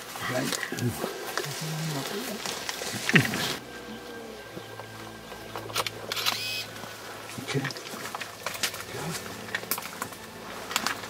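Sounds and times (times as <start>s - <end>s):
camera shutters clicking: 5.7s - 6.7s.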